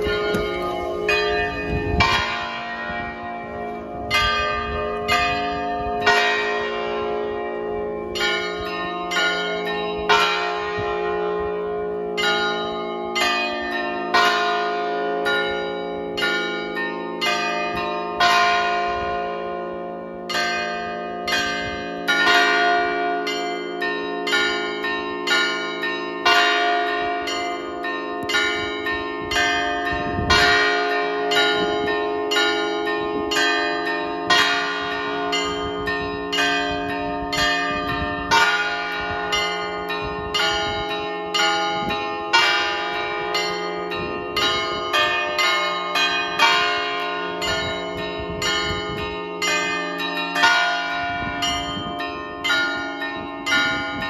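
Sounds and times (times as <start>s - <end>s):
deep bell stroke: 0.0s - 9.2s
large bells humming: 0.0s - 54.0s
small church bells ringing: 0.0s - 54.0s.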